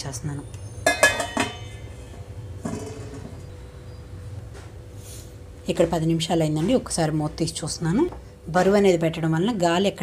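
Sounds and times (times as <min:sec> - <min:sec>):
metal lid clattering on pot: 0:00.8 - 0:01.9, 0:02.6 - 0:03.4.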